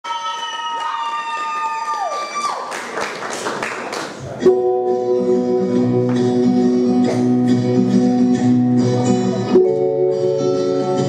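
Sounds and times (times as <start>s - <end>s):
guitar-led backing track: 4.2s - 11.0s.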